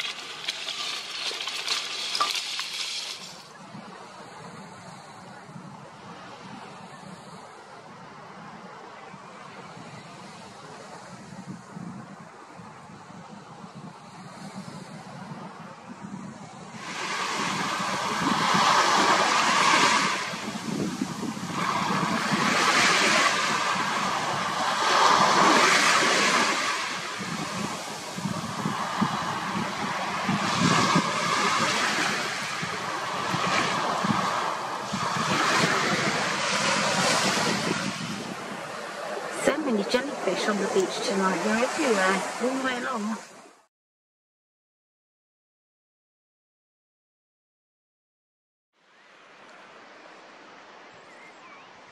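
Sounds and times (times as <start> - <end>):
sea waves breaking on beach: 0.0 - 43.7.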